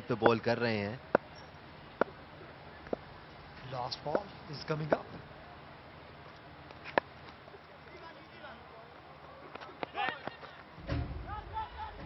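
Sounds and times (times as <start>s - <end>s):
stadium crowd noise: 0.0s - 12.0s
distant players shouting: 7.9s - 12.0s.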